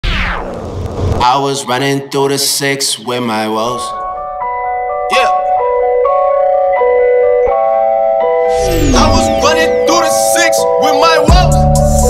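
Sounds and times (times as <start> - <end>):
bell-like synth melody: 4.0 - 10.8
vocal snippet: 8.5 - 10.6.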